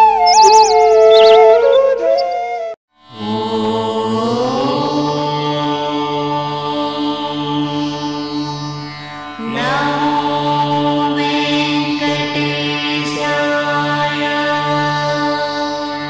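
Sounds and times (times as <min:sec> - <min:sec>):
musical drone: 0:00.0 - 0:02.8
chanted mantra: 0:03.1 - 0:08.8, 0:09.4 - 0:16.0.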